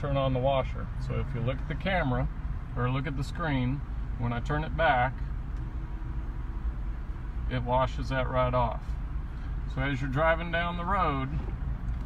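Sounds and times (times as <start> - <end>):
engine idling rumble: 0.0 - 12.0.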